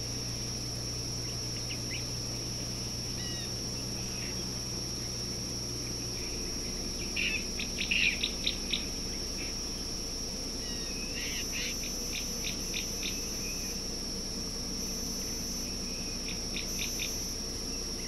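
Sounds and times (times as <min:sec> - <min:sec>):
high-pitched insect drone: 0:00.0 - 0:18.0.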